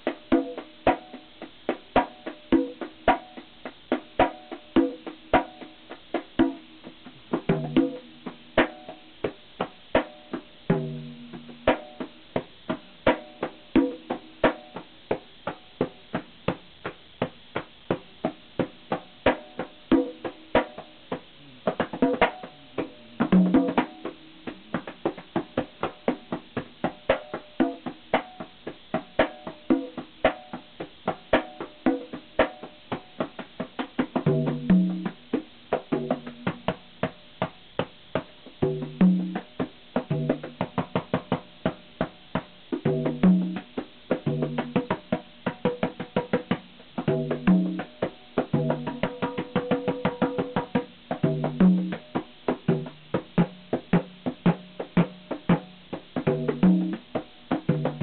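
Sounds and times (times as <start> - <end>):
conga drums: 0.0 - 58.0.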